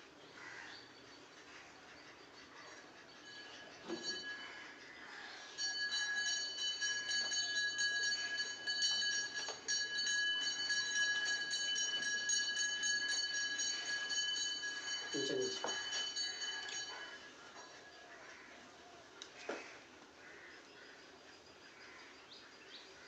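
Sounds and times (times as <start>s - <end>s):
high-pitched ringing alarm tone: 2.3s - 18.6s.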